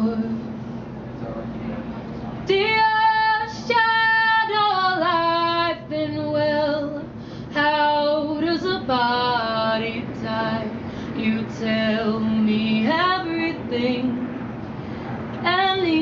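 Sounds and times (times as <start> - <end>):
woman singing a cappella: 0.0 - 0.5, 2.4 - 14.4, 15.4 - 16.0
singer breathing: 7.1 - 7.6, 10.8 - 11.2, 14.6 - 15.3.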